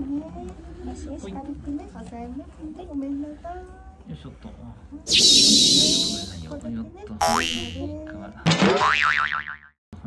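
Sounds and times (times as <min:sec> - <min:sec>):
rising whistle-like glide: 0:05.1 - 0:06.4
shimmering sound effect: 0:05.1 - 0:06.4
wobbling boing: 0:07.2 - 0:07.9, 0:08.7 - 0:09.7.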